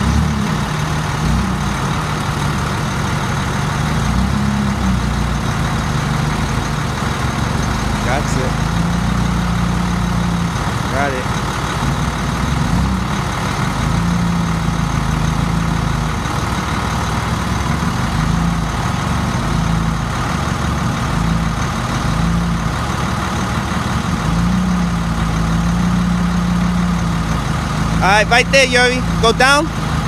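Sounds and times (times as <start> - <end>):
forklift engine running: 0.0 - 30.0.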